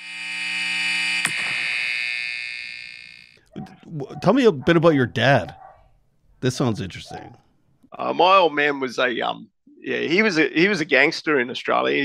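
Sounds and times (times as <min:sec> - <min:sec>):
buzzy electronic tone: 0:00.0 - 0:03.4
sharp click: 0:01.2 - 0:01.7.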